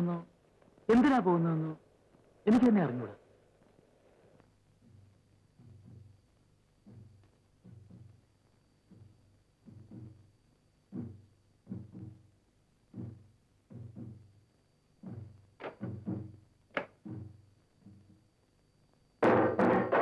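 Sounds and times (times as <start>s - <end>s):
pitched drum beats: 10.9s - 12.3s, 12.9s - 14.3s, 15.0s - 18.2s, 19.2s - 20.0s
loud burst of music with drums: 19.2s - 20.0s.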